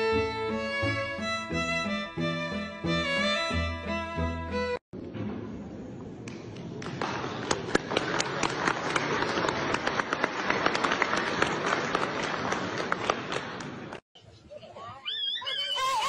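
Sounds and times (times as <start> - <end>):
crowd applauding: 6.8 - 14.0.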